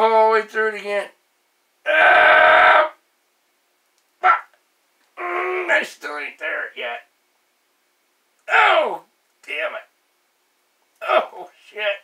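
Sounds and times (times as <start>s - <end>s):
man crying out in pain: 1.9s - 3.0s, 5.2s - 5.7s
man groaning: 1.9s - 3.0s, 5.2s - 5.8s, 8.5s - 9.0s.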